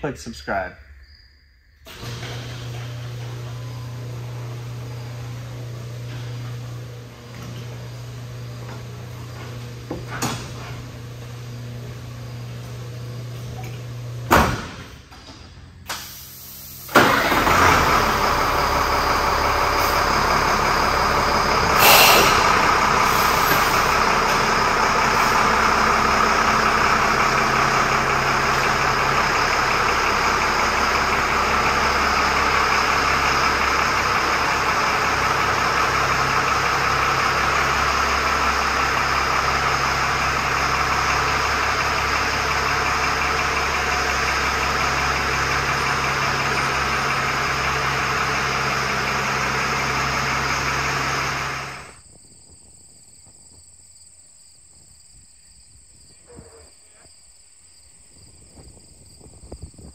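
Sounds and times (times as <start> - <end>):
truck diesel engine running: 1.9 - 52.0.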